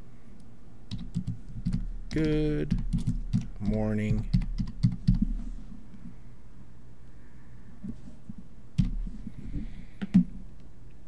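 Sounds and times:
typing on computer keyboard: 0.9 - 5.2.

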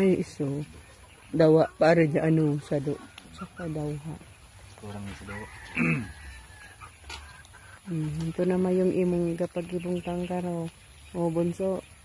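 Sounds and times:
chickens clucking: 0.0 - 12.0
thin high chicken calls: 5.1 - 7.9.

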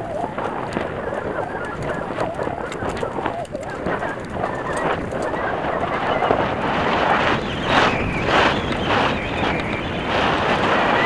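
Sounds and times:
bike rattling over bumps: 0.0 - 11.0
bike tyres on loose dirt: 0.0 - 11.0.

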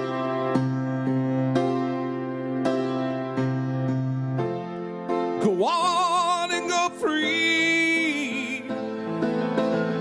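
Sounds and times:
slow keyboard chords: 0.0 - 10.0.

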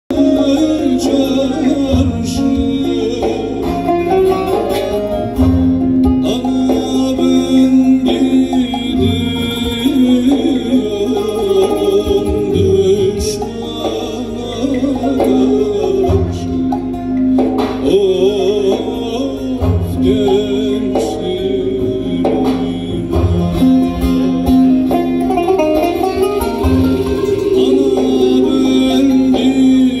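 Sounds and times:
keyboard: 0.1 - 30.0
low drum-like thumps: 0.1 - 30.0
man singing: 0.1 - 30.0
plucked lutes: 0.1 - 30.0.

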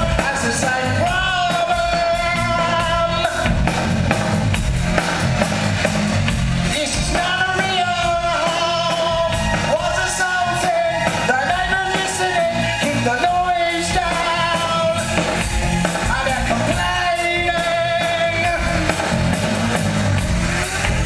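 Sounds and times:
man singing long notes: 0.0 - 3.7, 6.7 - 19.9
rock band playing: 0.0 - 21.0.

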